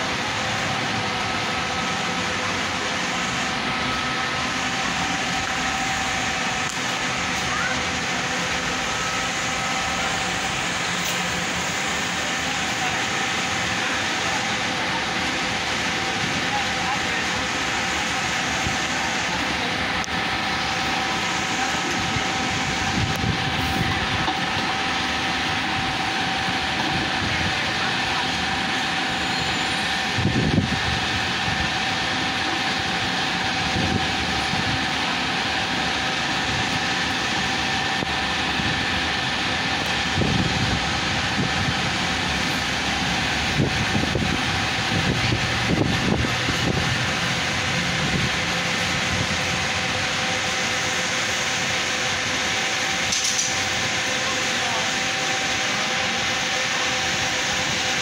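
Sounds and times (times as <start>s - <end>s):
bus engine swells: 0.0s - 58.0s
diesel buses idling: 0.0s - 58.0s
steady mechanical hum: 0.0s - 58.0s.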